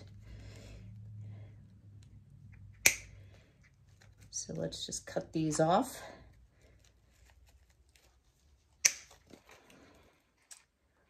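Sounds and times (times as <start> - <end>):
wire cutter snipping: 2.7 - 3.1
rustling of stems and leaves: 3.8 - 10.4.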